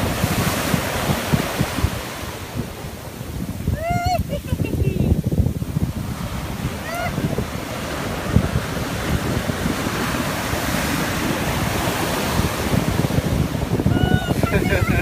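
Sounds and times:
ocean surf washing up beach: 0.0s - 15.0s
wind buffeting microphone: 0.0s - 15.0s.

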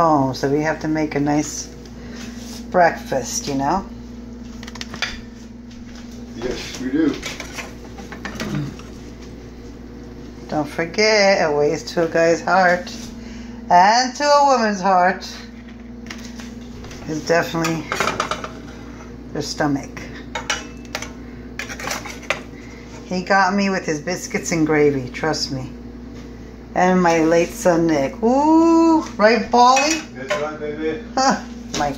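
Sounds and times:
woman speaking: 0.0s - 1.8s, 2.7s - 4.0s, 10.5s - 13.1s, 13.7s - 15.5s, 17.0s - 18.0s, 19.3s - 20.2s, 23.0s - 25.8s, 26.7s - 30.1s, 31.2s - 31.9s
low steady hum: 0.0s - 31.9s.

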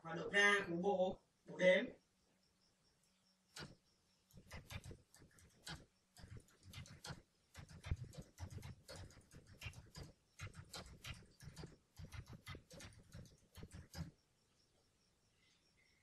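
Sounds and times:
typing on computer keyboard: 3.6s - 14.2s.

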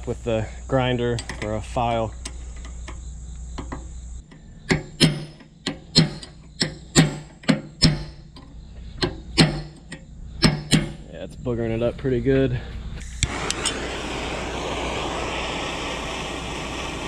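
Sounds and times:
steady low rumble: 0.0s - 17.0s
hammer striking metal punch: 4.7s - 11.1s.

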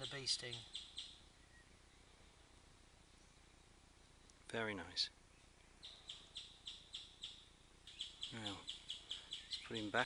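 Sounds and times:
bird chirping: 0.0s - 10.0s.

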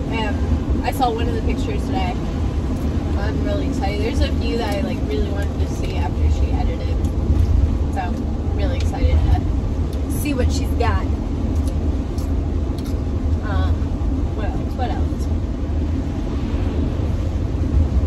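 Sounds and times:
road and engine rumble in van: 0.0s - 18.0s.

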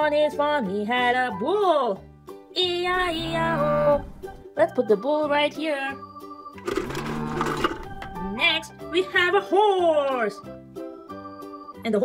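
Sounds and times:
background music: 0.0s - 12.0s
plastic toy figures rattling: 6.6s - 8.0s.

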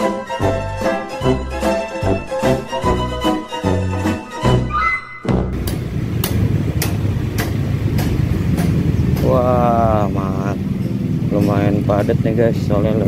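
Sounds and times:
road noise: 5.3s - 13.0s
motor scooter engine rumble: 5.6s - 13.0s.

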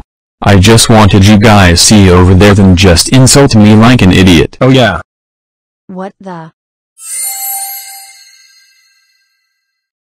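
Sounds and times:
bright bell-like ding: 7.0s - 9.7s.

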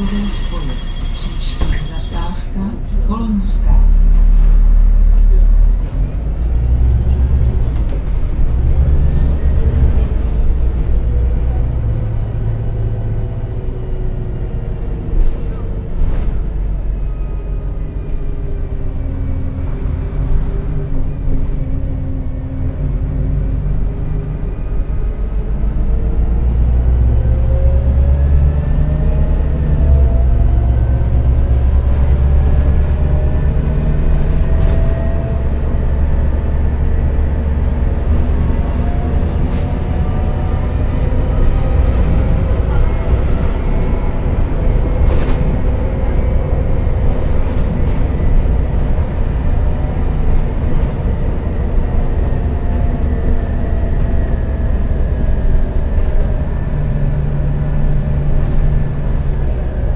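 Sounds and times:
bus engine and road rumble: 0.0s - 59.9s.

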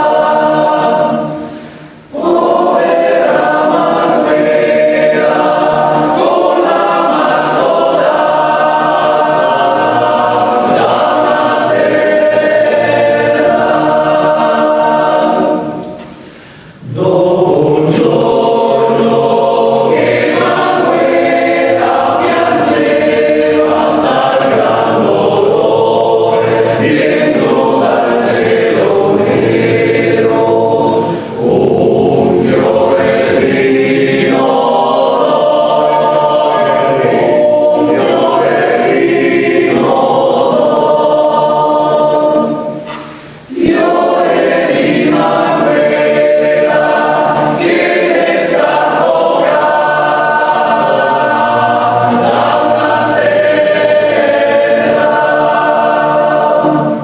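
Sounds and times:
male choir singing in harmony: 0.0s - 57.0s.

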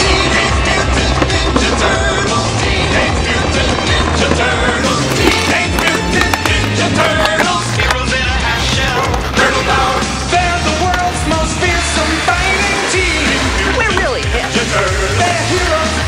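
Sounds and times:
background music with bass line: 0.0s - 16.0s
skateboard clacks: 0.0s - 16.0s
skateboard wheels rolling on concrete: 0.0s - 16.0s.

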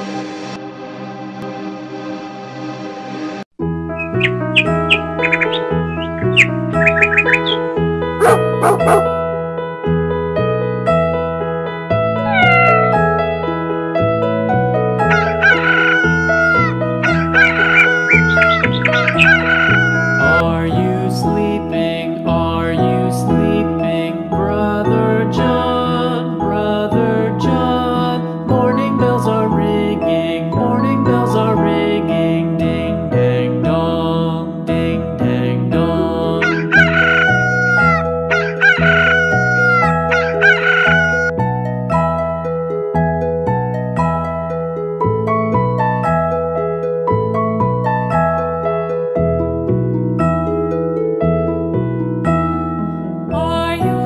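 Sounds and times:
light keyboard music with bass: 0.0s - 54.0s
rooster crowing: 8.2s - 9.0s, 12.3s - 13.1s, 15.1s - 20.4s, 36.4s - 41.3s
cat meowing: 12.3s - 13.3s.

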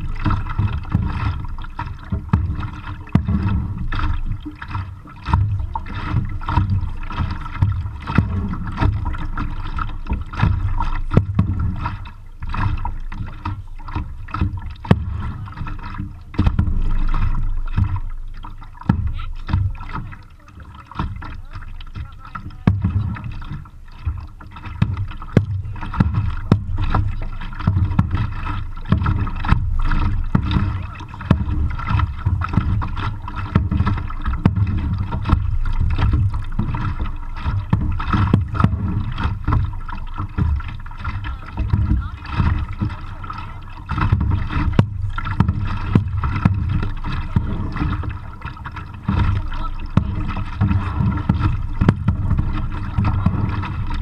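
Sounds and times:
microphone rumble: 0.0s - 20.2s, 21.0s - 24.2s, 24.8s - 54.0s
paddle splashing in water: 0.0s - 54.0s.

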